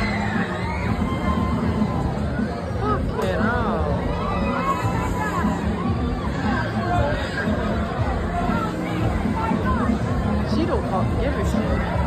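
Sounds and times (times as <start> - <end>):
crowd chatter: 0.0 - 12.0
loud fairground music: 0.0 - 12.0.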